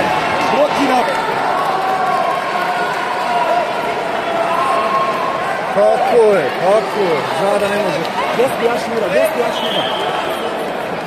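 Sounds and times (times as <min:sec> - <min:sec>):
many voices talking and calling: 0:00.0 - 0:11.0.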